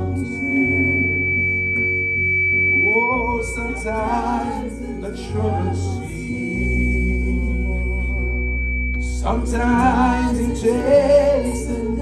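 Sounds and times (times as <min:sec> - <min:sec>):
person singing: 0:00.0 - 0:01.8, 0:02.8 - 0:12.0
electric bass low note: 0:00.0 - 0:12.0
sustained band chord: 0:00.0 - 0:12.0
thin high steady whine: 0:00.0 - 0:12.0.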